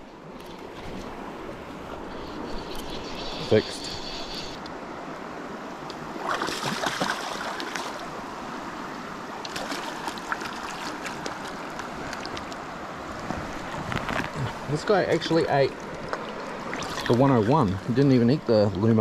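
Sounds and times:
river current rushing: 0.0 - 19.0
fish splashing at surface: 6.2 - 8.0.

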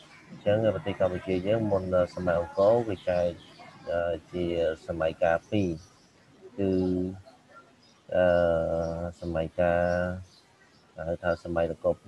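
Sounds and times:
man lecturing: 0.5 - 5.8, 6.6 - 7.2, 8.1 - 10.2, 11.0 - 12.0.

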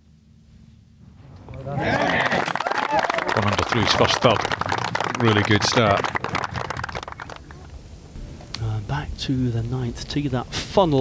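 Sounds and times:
quiet open-air ambience: 0.0 - 11.0
crowd applauding: 1.7 - 7.8.

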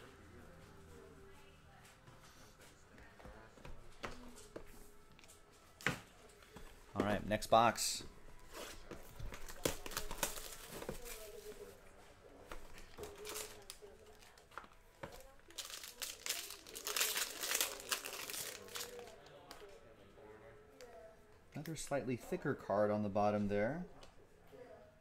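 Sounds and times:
plastic wrap crinkling and tearing: 8.5 - 11.5, 12.8 - 14.5, 15.1 - 19.2.

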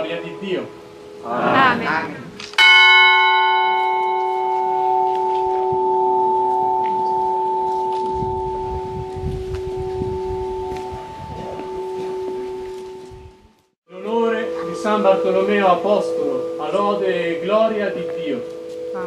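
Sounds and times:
church bell ringing: 2.5 - 13.4, 14.0 - 19.0.

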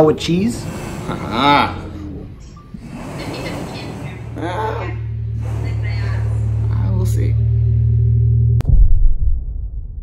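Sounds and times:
low rumbling drone: 0.0 - 10.0.

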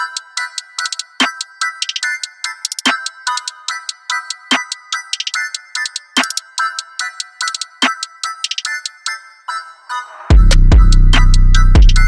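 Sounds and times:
bell-like melody: 0.0 - 12.0
rapid hi-hat rolls: 10.3 - 12.0.

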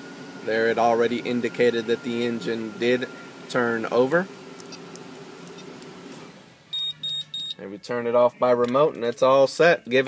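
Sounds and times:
key fob beeps: 6.7 - 7.6.

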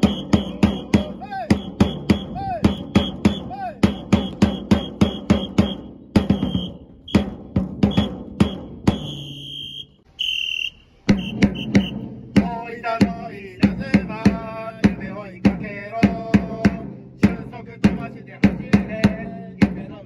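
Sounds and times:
drum beaten in fast rhythm: 0.0 - 9.2, 11.0 - 20.0
tune over drum: 0.0 - 9.2, 10.9 - 19.9
high whistle blasts: 0.0 - 12.0.

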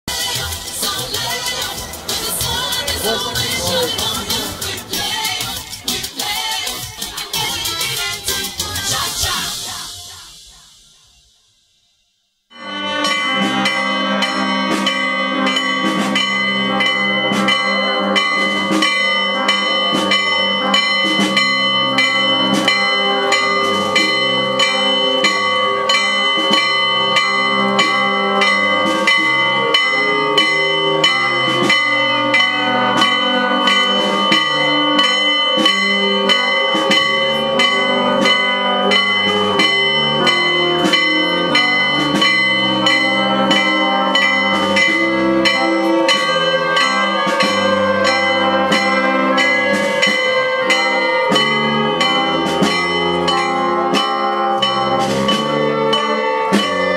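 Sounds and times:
church bells pealing: 0.2 - 5.9, 12.6 - 56.9.

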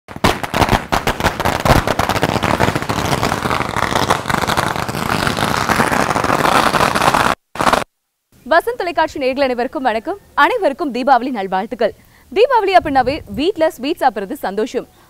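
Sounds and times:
firecrackers popping: 0.1 - 7.9.

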